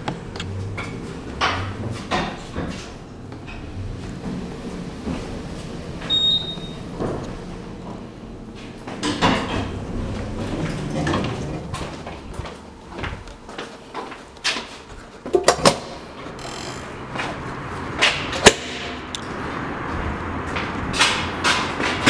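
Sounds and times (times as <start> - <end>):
elevator doors sliding open: 0.0 - 18.9.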